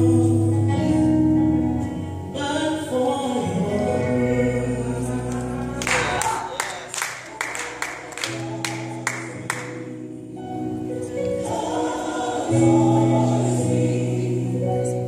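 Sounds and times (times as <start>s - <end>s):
gospel choir singing: 0.0s - 15.0s.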